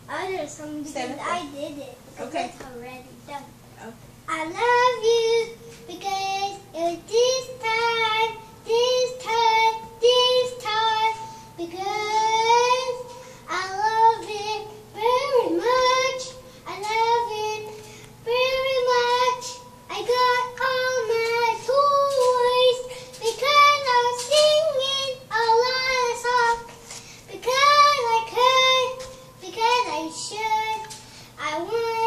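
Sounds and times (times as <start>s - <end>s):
young boy singing: 4.3s - 32.0s.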